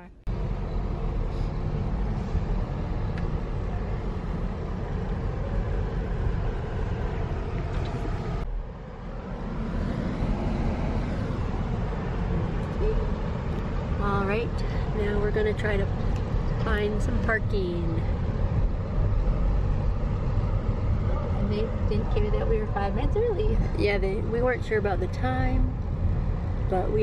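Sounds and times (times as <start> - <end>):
car engine rumble from inside cabin: 0.0 - 27.0.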